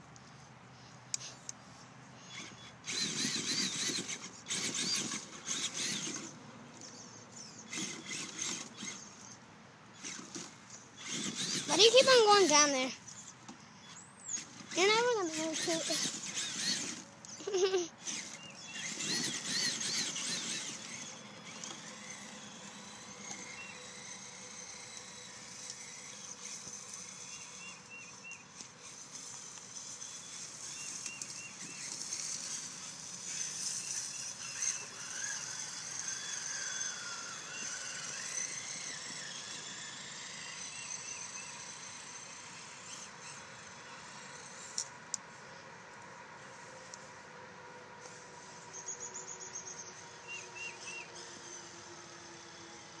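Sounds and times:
electric motor whining: 2.2 - 9.4, 10.0 - 44.9, 48.0 - 53.0.

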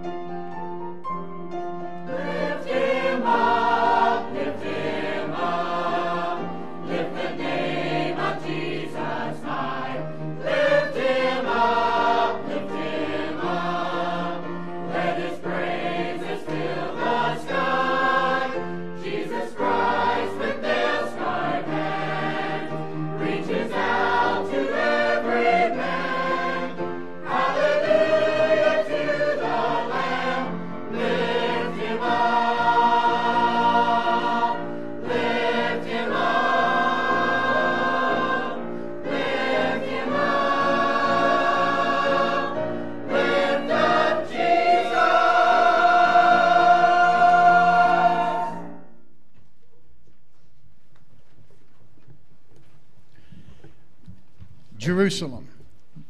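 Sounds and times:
mixed choir singing gospel: 2.0 - 49.0.

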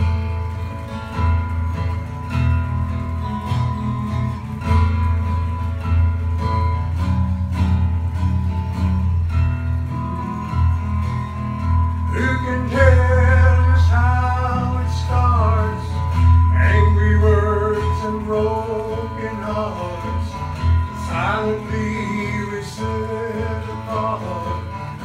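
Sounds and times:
acoustic guitars playing: 0.0 - 25.0
person singing: 9.9 - 25.0.

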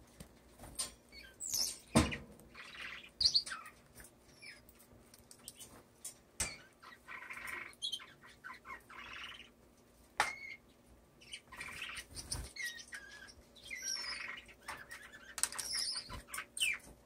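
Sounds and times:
birds chirping and whistling: 1.1 - 4.7, 6.4 - 9.6, 10.3 - 17.0
buzzy bird calls: 1.2 - 4.7, 6.6 - 9.6, 10.3 - 16.9.

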